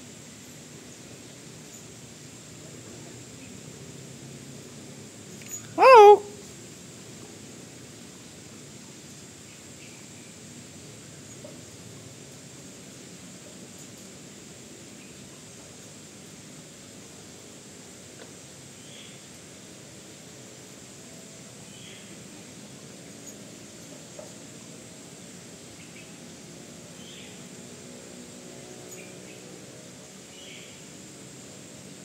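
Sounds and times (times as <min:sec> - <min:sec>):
low background noise: 0:00.0 - 0:32.0
faint bird chirps: 0:05.5 - 0:06.3.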